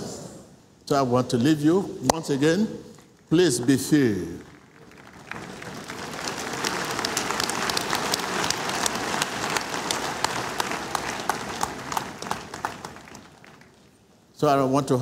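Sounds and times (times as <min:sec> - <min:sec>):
crowd applauding: 0:04.0 - 0:14.0.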